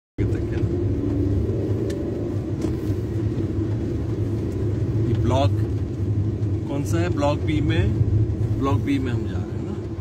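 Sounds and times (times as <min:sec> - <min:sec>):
car engine and tyres rumble: 0:00.2 - 0:10.0.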